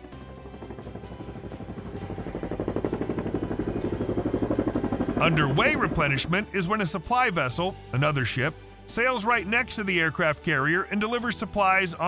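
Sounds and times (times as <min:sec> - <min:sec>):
helicopter rotor beating: 0:00.0 - 0:07.9.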